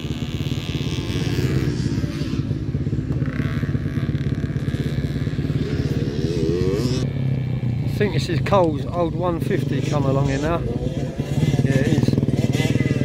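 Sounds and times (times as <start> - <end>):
dirt bike engine running: 0.0 - 13.0.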